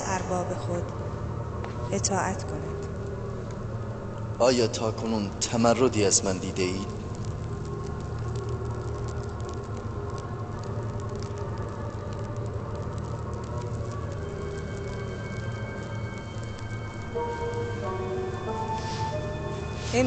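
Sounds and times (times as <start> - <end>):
faint steady crackle: 0.0 - 20.0
low sustained drone music: 0.0 - 20.0.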